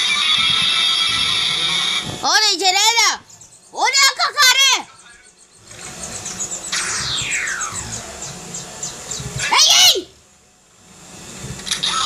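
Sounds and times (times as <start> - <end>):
electronic hiss with rapid ticking: 0.0 - 12.0
electronic tone sweeping down: 5.6 - 9.4.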